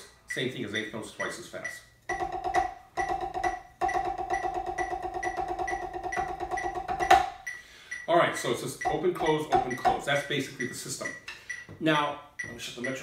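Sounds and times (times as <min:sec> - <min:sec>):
metronome clicking: 0:00.3 - 0:08.1, 0:08.8 - 0:11.2
drumsticks on practice pad: 0:08.8 - 0:10.1.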